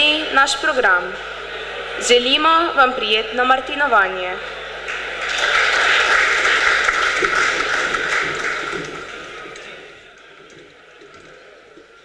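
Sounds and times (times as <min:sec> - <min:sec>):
audience applauding: 0:04.4 - 0:12.0.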